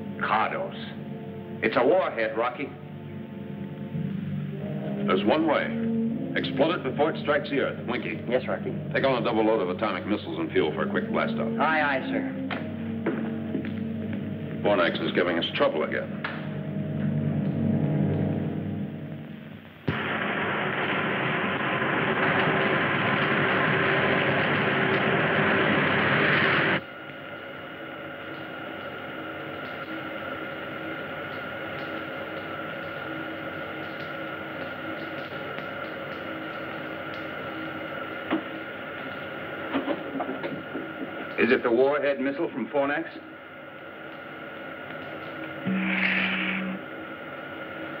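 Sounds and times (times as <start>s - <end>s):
musical chord: 0.0s - 19.6s, 45.6s - 46.9s
humming drone: 0.0s - 41.4s, 43.5s - 48.0s
rocket blast-off roar: 19.9s - 26.8s
high held tones: 45.0s - 47.2s.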